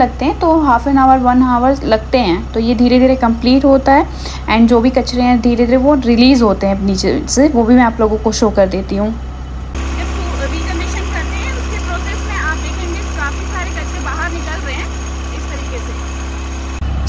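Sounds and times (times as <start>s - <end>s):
diesel engine idling: 0.0s - 17.0s.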